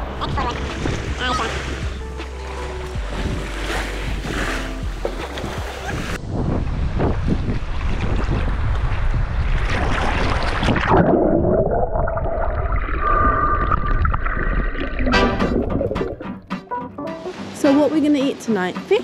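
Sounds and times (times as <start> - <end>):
sea water splashing: 0.0 - 19.0.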